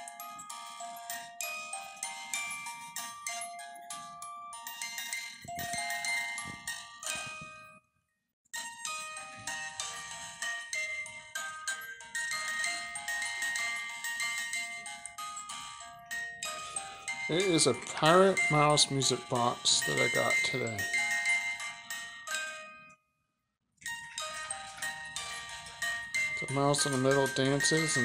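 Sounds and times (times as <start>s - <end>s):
music box tune: 0.0s - 7.8s, 8.6s - 23.0s, 23.8s - 28.0s.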